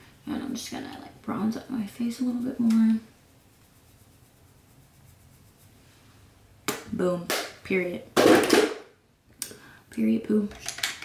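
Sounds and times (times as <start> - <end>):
makeup items clattering: 10.5 - 11.0.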